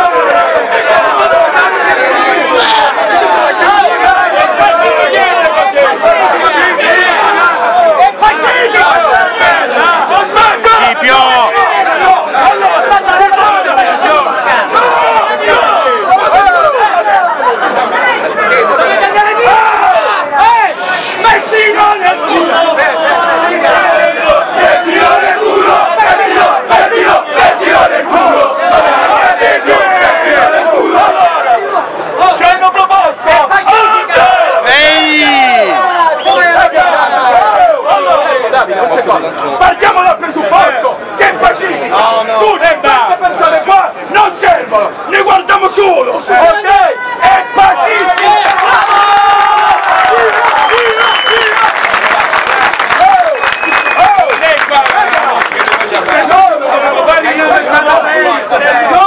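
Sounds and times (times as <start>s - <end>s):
crowd shouting together: 0.0s - 59.0s.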